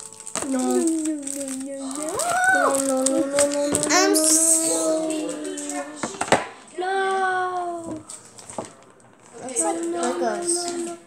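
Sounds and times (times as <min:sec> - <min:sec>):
child singing a note: 0:00.4 - 0:06.2.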